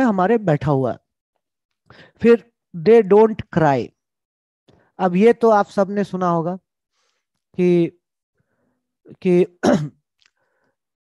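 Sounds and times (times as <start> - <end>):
man clearing his throat: 9.6 - 10.0.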